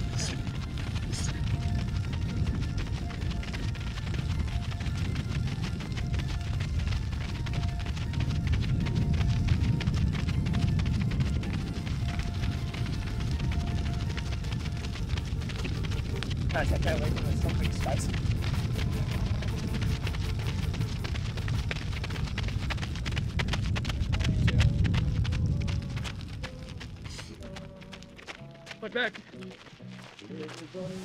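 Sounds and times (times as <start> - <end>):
wind buffeting microphone: 0.0 - 27.8
faint music: 0.0 - 31.0.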